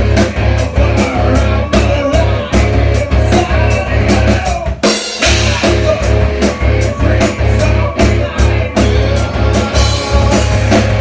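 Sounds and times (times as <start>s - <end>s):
electric guitar: 0.0s - 11.0s
man singing into a microphone: 0.0s - 11.0s
steady drum beat: 0.0s - 11.0s.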